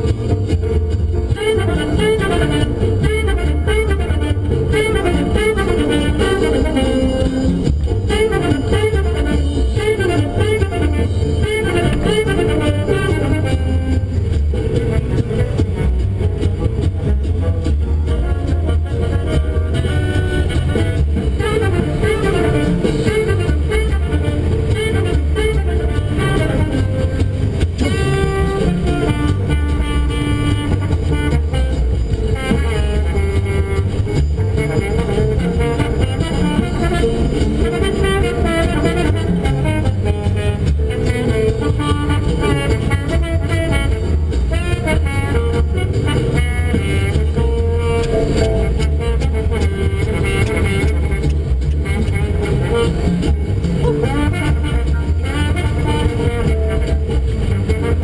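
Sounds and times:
car road and engine rumble: 0.0s - 58.0s
jazz guitar music on car radio: 0.0s - 58.0s.

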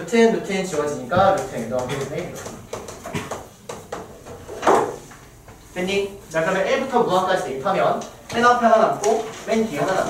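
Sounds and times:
man speaking: 0.0s - 2.6s, 5.8s - 10.0s
chalk tapping on blackboard: 1.2s - 5.0s.

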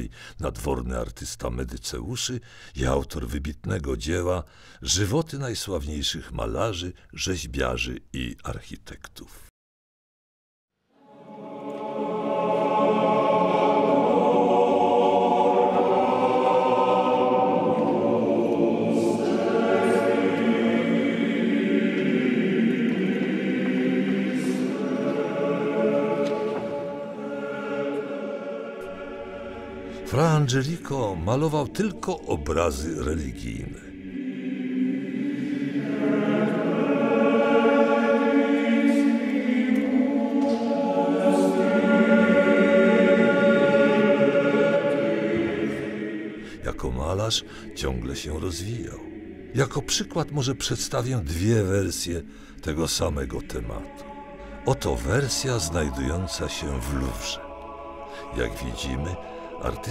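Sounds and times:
choir singing sustained chords: 10.8s - 59.9s.

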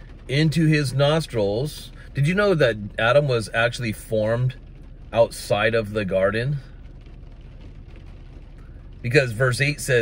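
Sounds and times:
low hum: 0.0s - 10.0s
rain on car roof: 0.0s - 10.0s.

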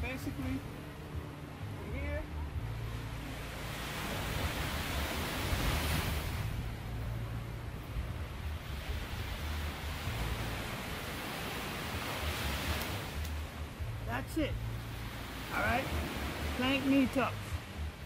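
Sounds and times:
waves washing onto beach: 0.0s - 18.0s
wind rumbling on microphone: 0.0s - 18.0s.

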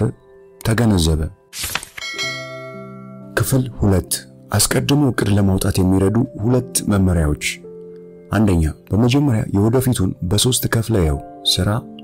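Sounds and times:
bell-like notification chime: 2.0s - 3.6s.

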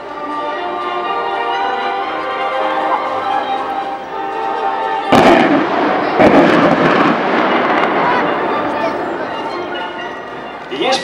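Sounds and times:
faint music: 0.0s - 11.0s
loud blasts with rumble: 5.0s - 10.4s.

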